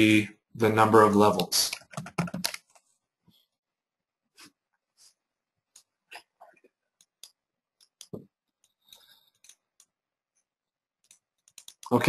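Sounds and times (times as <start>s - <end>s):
computer mouse and keyboard clicks: 1.3s - 2.9s, 7.0s - 10.0s, 11.0s - 12.0s.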